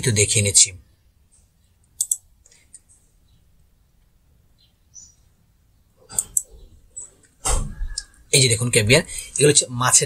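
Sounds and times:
computer mouse clicks: 1.8 - 2.9, 6.1 - 6.6.

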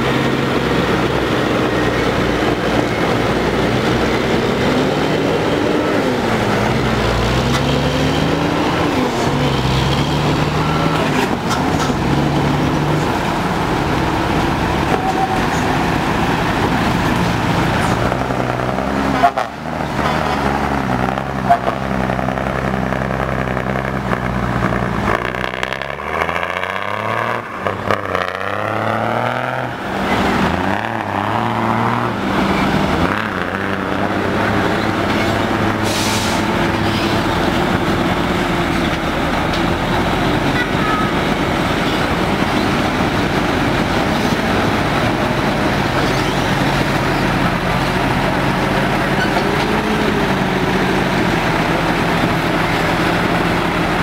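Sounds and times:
diesel truck engines revving: 0.0 - 54.0.

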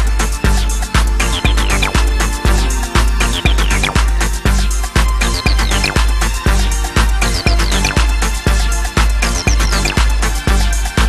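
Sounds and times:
electronic dance music: 0.4 - 10.9
high falling synth blips: 1.2 - 6.0.

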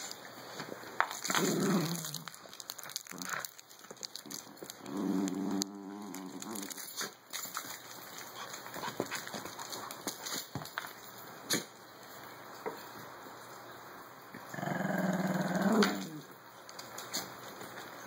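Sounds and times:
small dogs growling: 1.3 - 2.4, 4.8 - 6.9, 14.4 - 16.3.

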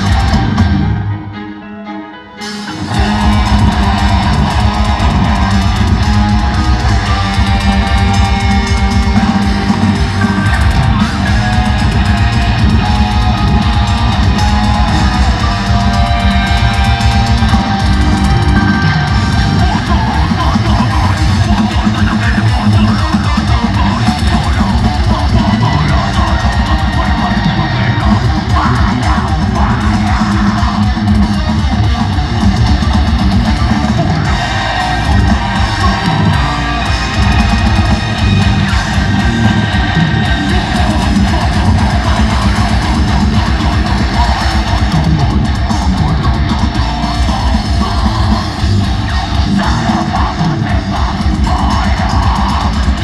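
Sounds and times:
fast drumming: 0.0 - 0.8, 2.8 - 53.0
bass guitar: 0.0 - 1.8, 2.4 - 53.0
distorted electric guitars: 0.0 - 53.0.

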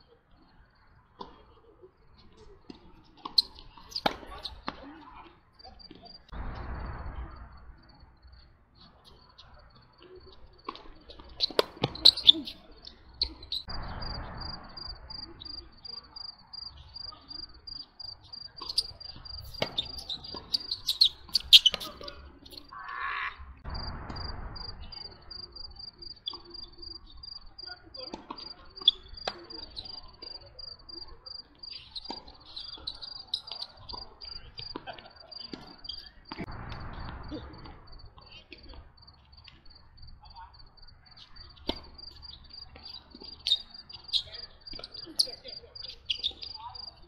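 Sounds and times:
tennis balls struck by racquets: 2.7 - 4.9, 17.8 - 22.7
cricket chirping: 11.4 - 22.9, 23.6 - 47.0.

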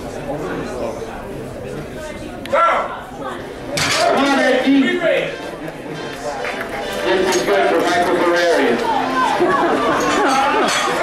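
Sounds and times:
low background talk: 0.0 - 11.0.

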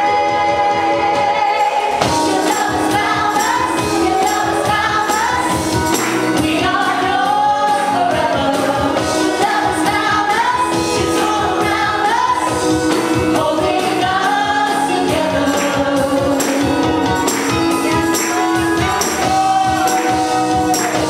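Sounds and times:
women singing: 0.0 - 21.0
music with steady beat: 1.9 - 21.0.

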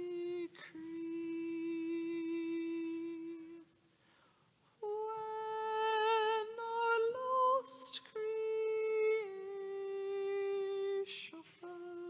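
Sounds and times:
person singing a hymn: 0.0 - 3.8, 4.8 - 12.0.

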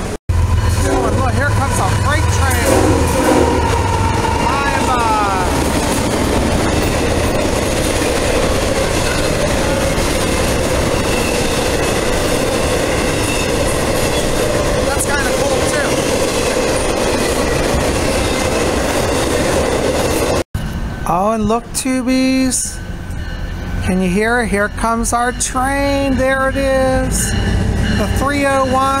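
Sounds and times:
freight train passing: 0.0 - 29.0
train wheels clickety-clack: 1.0 - 20.4.

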